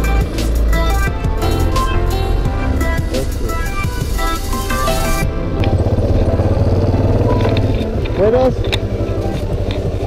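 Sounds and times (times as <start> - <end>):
background music: 0.0 - 10.0
motorcycle engine running: 0.0 - 10.0.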